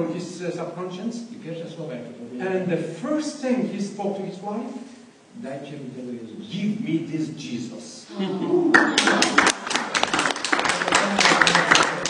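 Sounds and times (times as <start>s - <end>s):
laughter: 8.1s - 9.4s
audience applauding: 8.7s - 12.0s.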